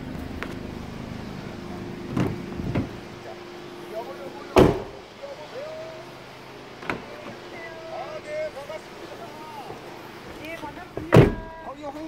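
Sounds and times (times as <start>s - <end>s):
background speech: 3.1s - 12.0s
loud thump: 4.6s - 5.0s.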